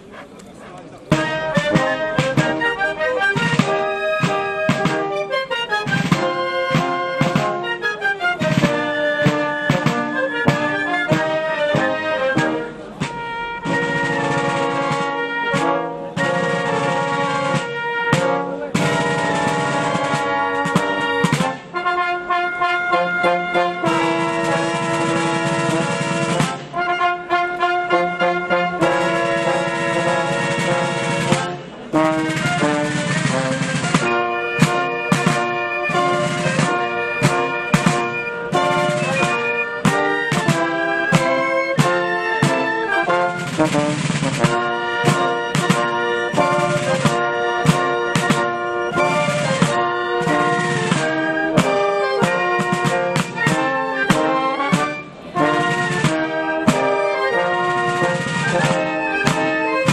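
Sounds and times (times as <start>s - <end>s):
wind band playing: 0.0s - 59.9s
drum strokes: 1.0s - 21.8s, 22.9s - 59.9s.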